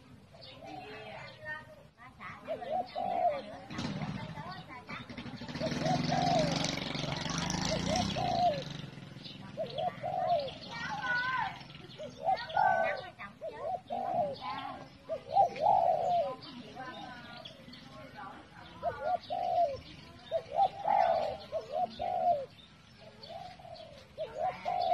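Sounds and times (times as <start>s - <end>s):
dove cooing: 0.0s - 24.9s
high-pitched bird calls: 0.0s - 24.9s.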